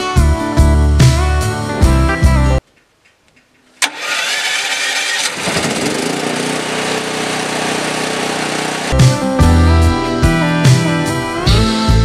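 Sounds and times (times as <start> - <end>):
generator starter cranking: 3.8 - 9.0
generator engine running: 3.8 - 9.7.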